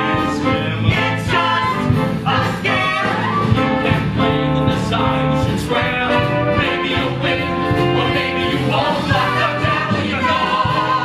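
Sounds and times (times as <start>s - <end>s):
pit band playing: 0.0s - 11.0s.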